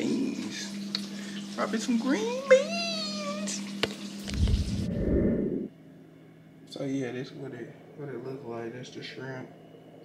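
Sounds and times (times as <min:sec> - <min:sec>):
low rumbling noise: 0:04.3 - 0:05.7.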